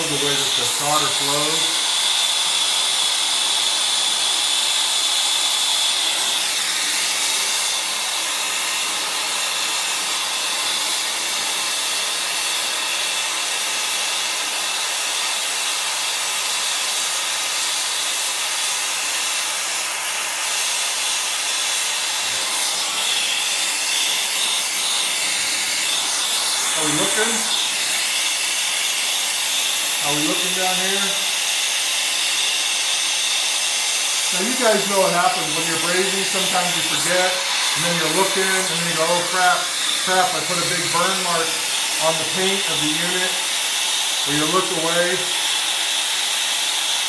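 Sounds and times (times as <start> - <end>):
torch flame hissing: 0.0 - 47.0.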